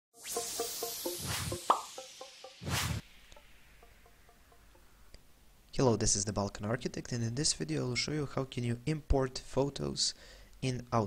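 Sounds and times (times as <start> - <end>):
whoosh: 0.2 - 4.8
plopping musical notes: 0.4 - 2.6
soft airy swish: 2.6 - 3.2.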